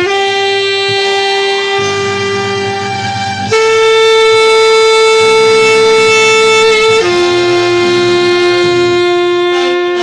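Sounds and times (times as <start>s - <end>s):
alto saxophone long note: 0.0s - 10.0s.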